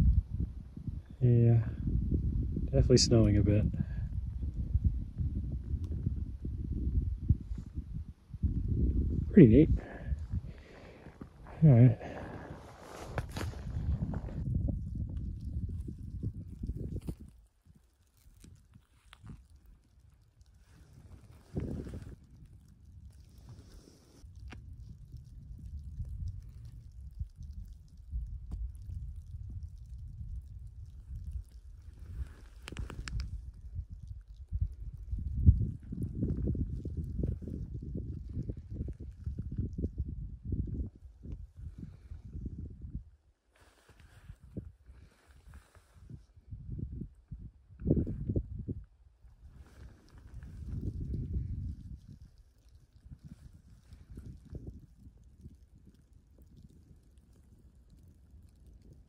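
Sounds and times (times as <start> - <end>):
wind gusting over microphone: 0.0 - 19.6, 20.4 - 43.4, 44.0 - 59.0.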